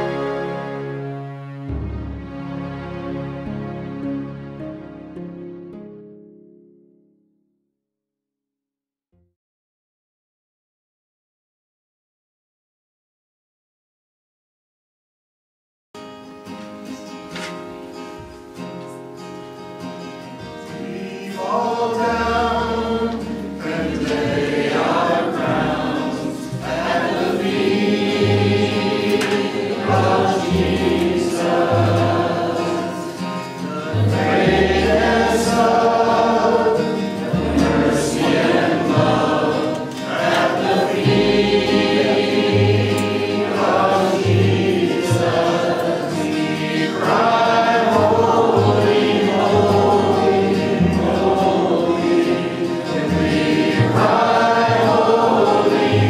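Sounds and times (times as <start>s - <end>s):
acoustic guitar: 0.0s - 7.5s, 16.0s - 56.0s
vocal group singing in harmony: 20.4s - 56.0s.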